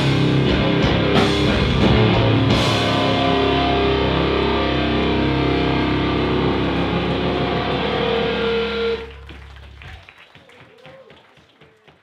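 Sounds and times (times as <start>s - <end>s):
band playing distorted guitar and bass: 0.0s - 9.8s.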